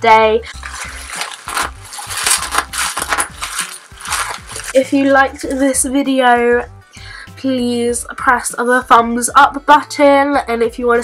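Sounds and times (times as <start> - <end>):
bubble wrap popping: 0.5 - 4.8.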